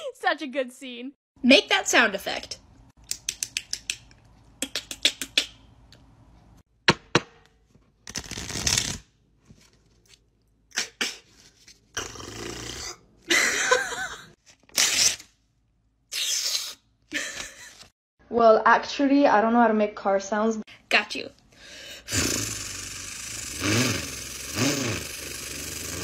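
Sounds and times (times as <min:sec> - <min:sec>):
short rough hissing bursts: 0:22.1 - 0:26.0.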